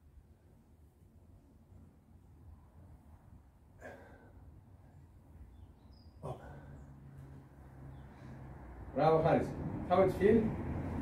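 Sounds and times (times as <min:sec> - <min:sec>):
man's forced exhale: 0:03.8 - 0:04.5.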